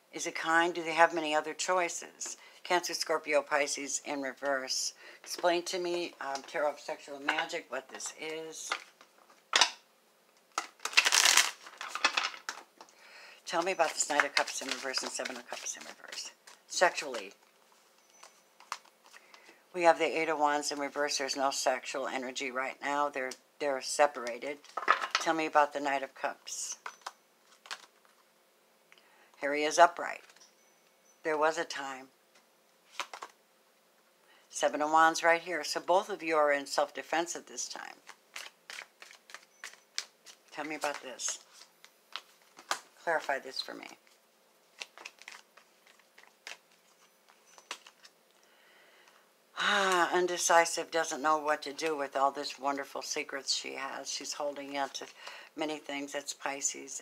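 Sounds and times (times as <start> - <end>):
cards being shuffled: 10.5 - 12.9, 13.5 - 19.5, 26.8 - 28.2, 32.3 - 33.4, 37.9 - 48.2.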